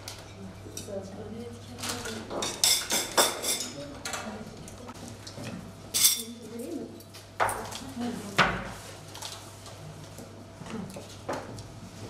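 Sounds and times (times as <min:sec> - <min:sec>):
metal tongs clinking on plates: 0:01.9 - 0:04.3, 0:05.9 - 0:07.8.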